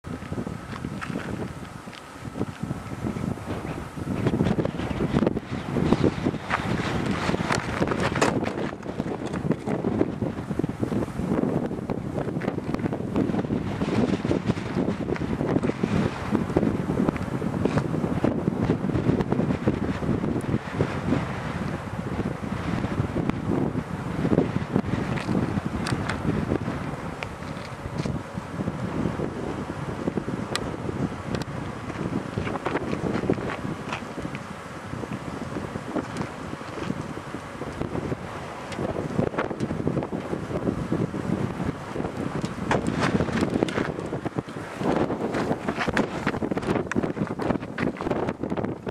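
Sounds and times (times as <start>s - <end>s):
wind buffeting microphone: 0.0s - 48.9s.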